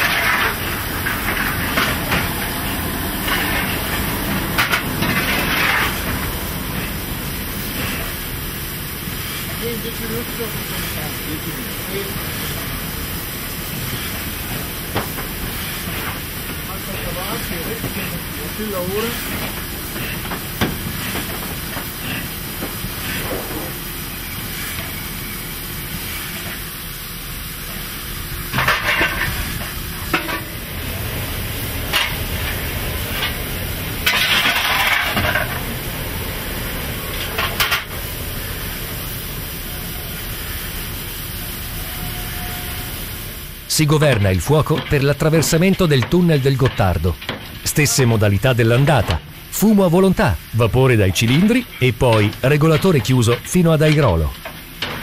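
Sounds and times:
steam hissing: 0.0 - 55.0
surges of steam: 0.0 - 55.0.

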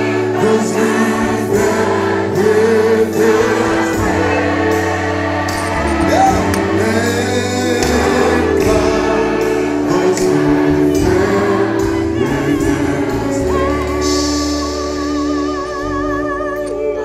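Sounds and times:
band playing low bass notes: 0.0 - 17.0
congregation singing a hymn: 0.0 - 17.0.

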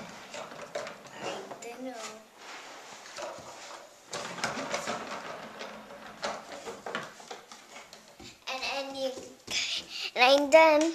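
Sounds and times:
child rustling and knocking: 0.0 - 10.9
young girl's voice: 1.2 - 2.3, 8.4 - 10.9.

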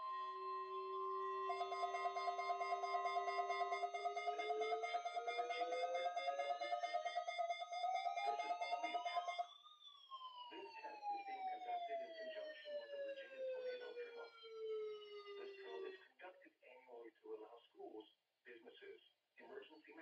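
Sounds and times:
fast-pulsing beeping alarm: 0.0 - 16.0
siren-like wail: 0.0 - 16.0
steady electronic alert tone: 1.5 - 9.4.

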